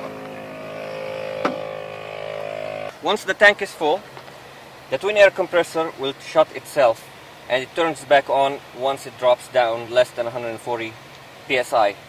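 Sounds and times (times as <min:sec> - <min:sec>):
air compressor humming: 0:00.0 - 0:03.1.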